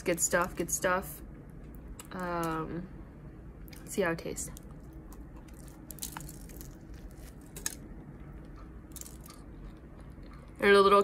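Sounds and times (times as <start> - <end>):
chewing a bagel sandwich: 4.5 - 10.6.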